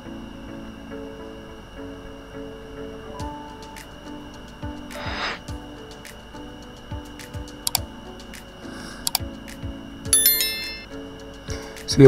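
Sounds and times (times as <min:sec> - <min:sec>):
soft music with low beat: 0:00.0 - 0:12.0
sharp click sound effects: 0:07.2 - 0:07.9, 0:09.1 - 0:09.3
bell-like notification ding: 0:10.1 - 0:10.9.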